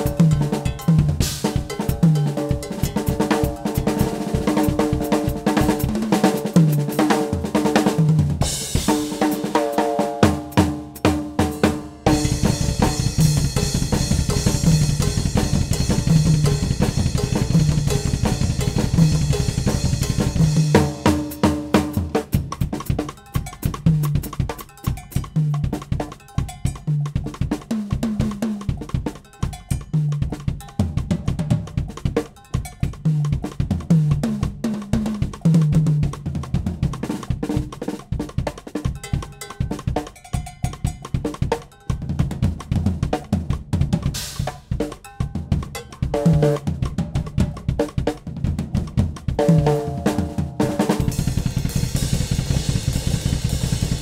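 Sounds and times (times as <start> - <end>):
drum kit played hard: 0.0 - 54.0.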